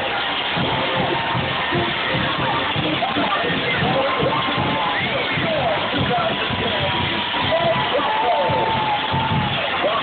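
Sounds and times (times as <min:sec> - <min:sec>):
marching band playing: 0:00.0 - 0:10.0.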